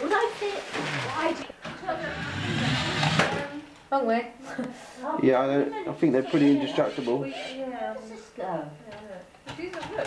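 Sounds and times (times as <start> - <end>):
voices in room: 0.0 - 10.0.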